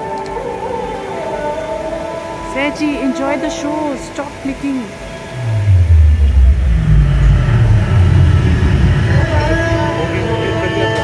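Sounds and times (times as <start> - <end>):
faint music: 0.0 - 11.0
loud deep rumble: 5.3 - 10.7.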